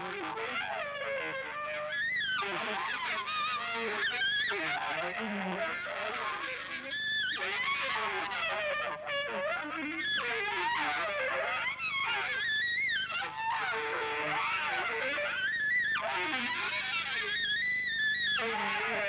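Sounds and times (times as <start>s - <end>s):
saxophone improvising: 0.0s - 19.0s.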